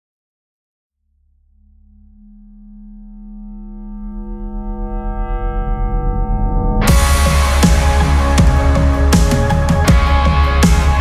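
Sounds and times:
pulsing low bass: 1.0s - 11.0s
synthesizer chord: 1.6s - 11.0s.

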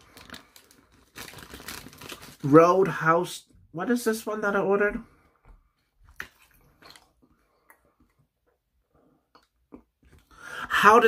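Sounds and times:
paper wrapper crinkling: 0.0s - 3.0s.

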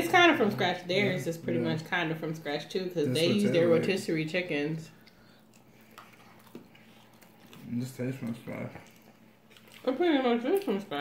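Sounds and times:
faint chewing: 4.9s - 11.0s.

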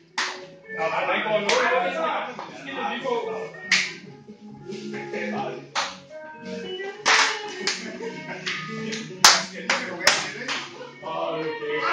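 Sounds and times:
sharp hand claps: 0.1s - 0.5s, 1.5s - 1.7s, 3.7s - 4.0s, 5.8s - 6.1s, 7.0s - 10.8s.

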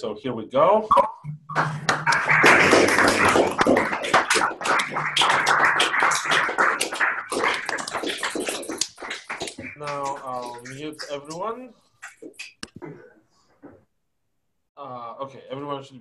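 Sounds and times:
people clapping: 1.4s - 12.9s.

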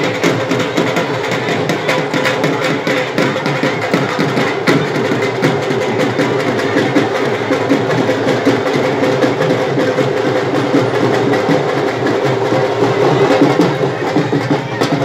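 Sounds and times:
dhol drum beaten rapidly: 0.0s - 15.0s.

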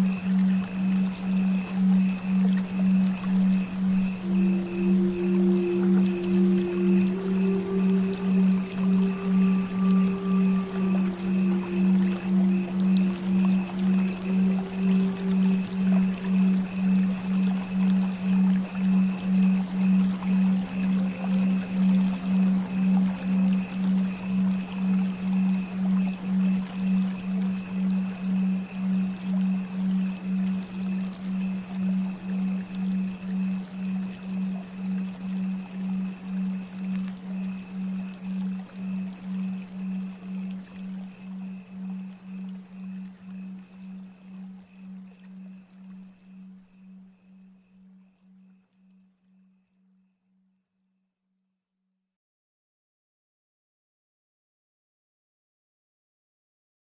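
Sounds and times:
flowing water hiss: 0.0s - 47.5s
pulsing low drone: 0.0s - 48.2s
faint high tone: 2.5s - 16.7s.

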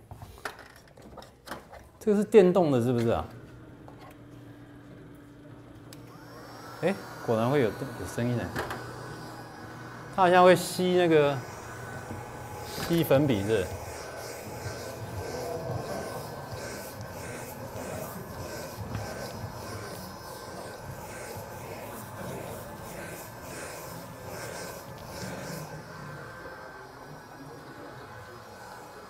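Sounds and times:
electric eraser motor whine: 2.8s - 29.0s
eraser scrubbing on blackboard: 11.0s - 26.0s.

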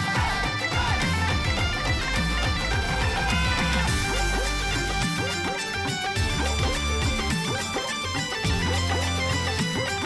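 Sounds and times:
bagpipes playing a melody: 0.0s - 9.7s
bass-heavy beat: 0.0s - 10.0s.

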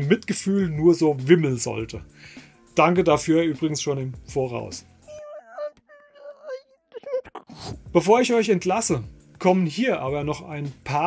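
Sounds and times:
woman crying: 5.1s - 7.7s.

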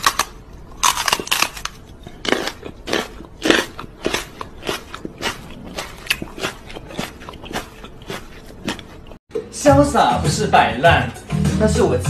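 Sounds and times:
close crunching and crackling: 0.0s - 9.2s.

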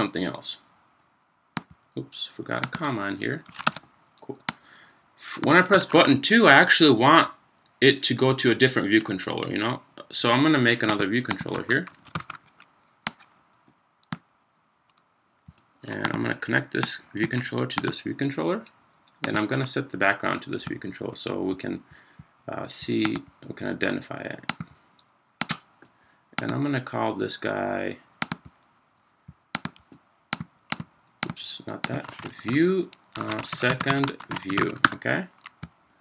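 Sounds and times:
computer mouse clicks: 10.9s - 13.3s, 25.4s - 25.6s, 29.6s - 35.7s.

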